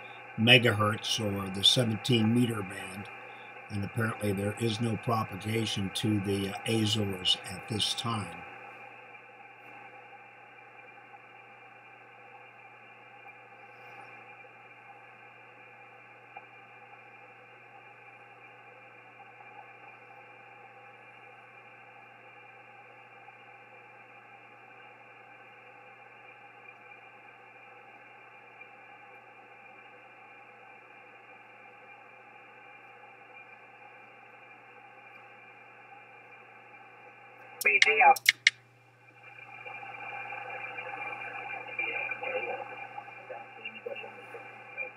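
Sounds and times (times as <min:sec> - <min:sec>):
radio receiver hiss: 0:00.0 - 0:44.9.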